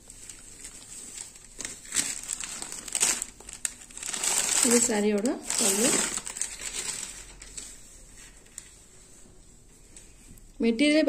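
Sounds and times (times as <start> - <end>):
cotton cloth rustling: 0.0 - 10.3.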